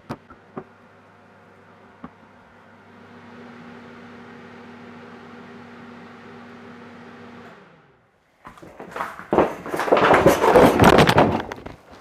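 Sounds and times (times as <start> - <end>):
clatter: 8.5 - 12.0.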